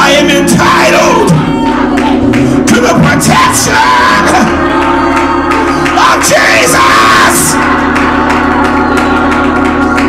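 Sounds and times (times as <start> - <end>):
sustained keyboard chords: 0.0 - 10.0.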